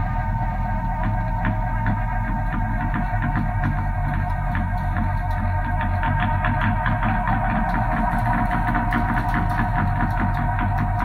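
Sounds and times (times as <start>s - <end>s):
low bass drone: 0.0s - 11.0s
sustained droning tones: 0.0s - 11.0s.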